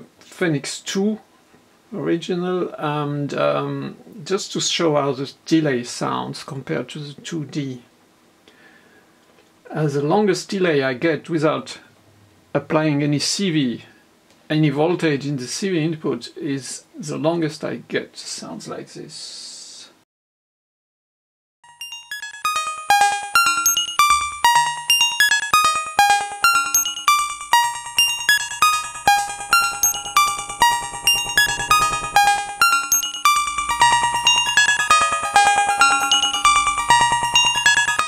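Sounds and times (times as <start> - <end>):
synthesizer notes with echoes: 21.7 - 38.0.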